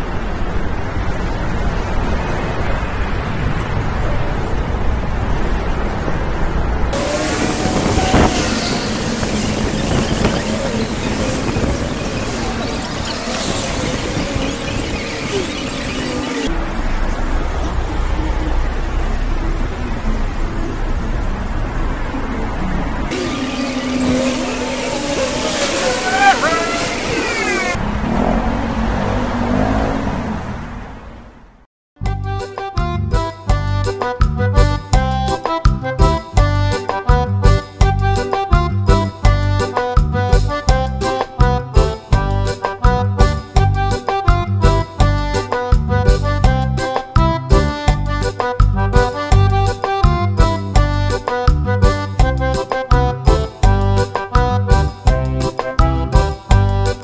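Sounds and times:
cars going by: 0.0 - 31.7
city traffic rumble: 0.0 - 57.0.

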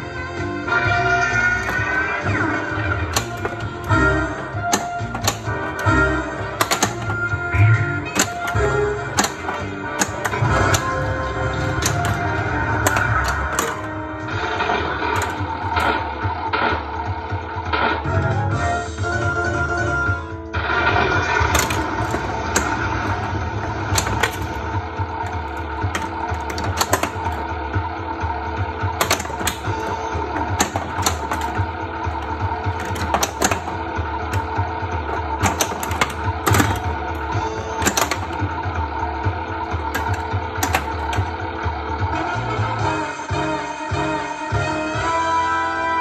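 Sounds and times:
pinball game music: 0.0 - 46.0
pinball flipper clacks: 0.8 - 16.8, 20.8 - 42.6.

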